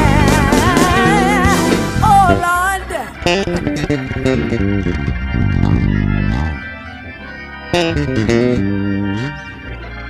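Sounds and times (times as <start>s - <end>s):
electric bass guitar plucked: 0.0s - 10.0s.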